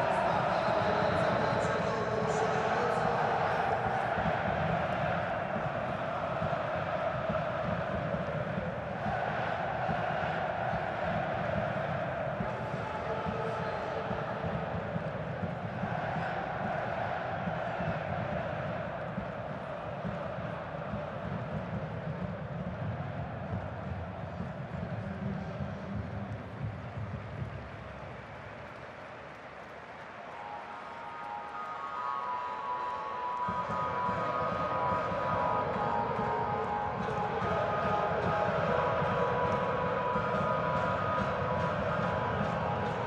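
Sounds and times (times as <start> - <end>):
crowd singing held notes: 0.0 - 22.4, 29.1 - 43.0
stadium crowd din: 0.0 - 43.0.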